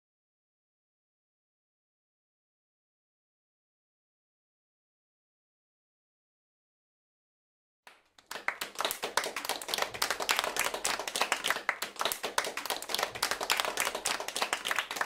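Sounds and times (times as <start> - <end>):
hands clapping: 7.9 - 15.0.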